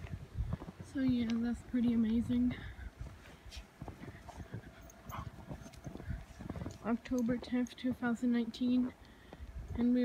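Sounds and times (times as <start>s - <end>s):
footsteps crunching in snow: 0.0s - 8.4s.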